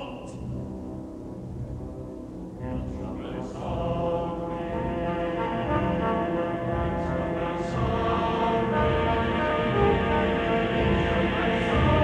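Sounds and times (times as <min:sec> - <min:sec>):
choir singing chords: 0:00.0 - 0:12.0
low orchestral tones: 0:00.0 - 0:12.0.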